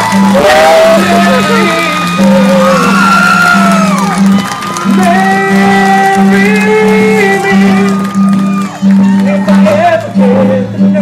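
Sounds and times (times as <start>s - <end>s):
crowd cheering and whooping: 0.0s - 10.1s
music playing: 0.0s - 11.0s.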